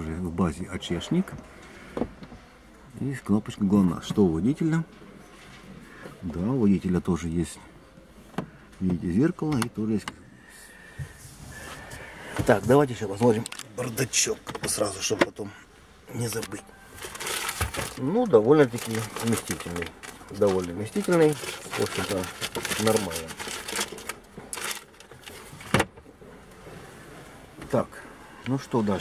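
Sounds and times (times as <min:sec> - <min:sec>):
plastic bag rustling: 0:16.1 - 0:25.7.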